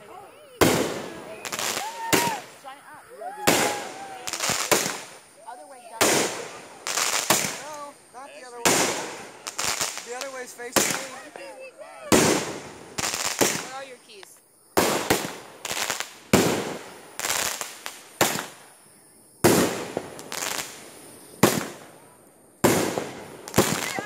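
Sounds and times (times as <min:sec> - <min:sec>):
fireworks bursting with sharp bangs: 0:00.0 - 0:24.0
fireworks crackling and popping: 0:00.0 - 0:24.0.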